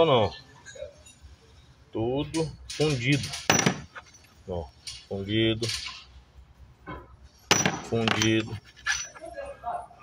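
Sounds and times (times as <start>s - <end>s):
metal piston clinking in tray: 7.5s - 9.3s.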